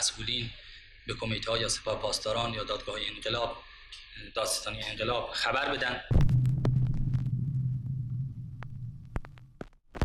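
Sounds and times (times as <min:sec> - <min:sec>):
low hum: 0:06.1 - 0:09.6.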